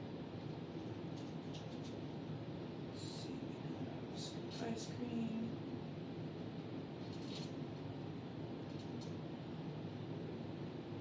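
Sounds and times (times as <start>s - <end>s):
room background noise: 0.0s - 11.0s.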